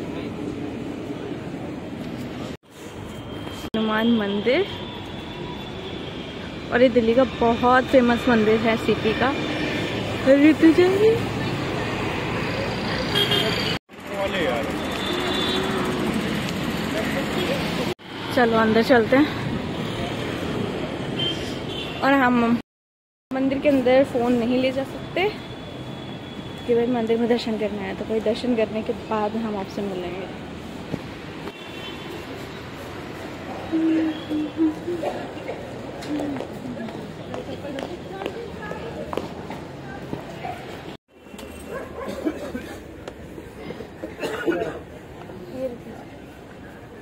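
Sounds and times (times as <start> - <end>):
city background hum: 0.0 - 22.6, 23.3 - 47.0
motor vehicles passing: 7.0 - 21.6.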